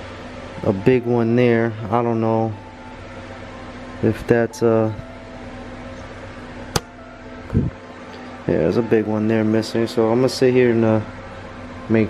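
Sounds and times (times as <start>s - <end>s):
steady low hum: 0.0s - 12.0s
sharp click: 6.7s - 6.9s.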